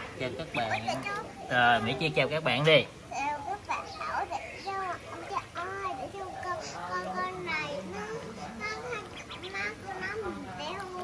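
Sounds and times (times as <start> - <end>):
small child babbling: 3.1 - 11.0.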